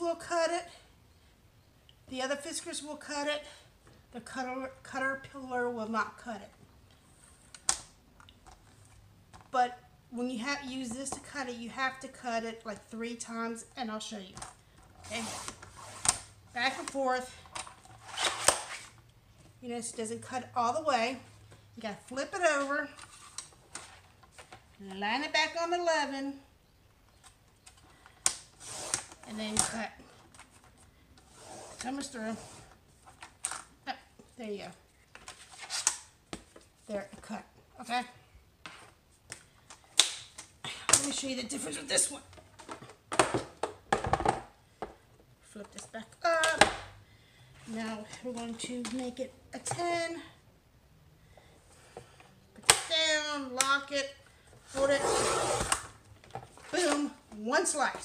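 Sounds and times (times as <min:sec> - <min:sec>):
woman speaking: 0:00.0 - 0:00.8, 0:02.1 - 0:06.5, 0:09.5 - 0:14.4, 0:15.0 - 0:15.4, 0:16.5 - 0:17.4, 0:19.6 - 0:23.0, 0:24.8 - 0:26.5, 0:29.3 - 0:30.0, 0:31.8 - 0:32.4, 0:33.9 - 0:34.8, 0:36.9 - 0:38.2, 0:40.9 - 0:42.3, 0:45.5 - 0:46.7, 0:47.6 - 0:50.4, 0:52.6 - 0:55.6, 0:56.7 - 0:58.0
board scraping from paper trimmer: 0:54.8 - 0:55.8.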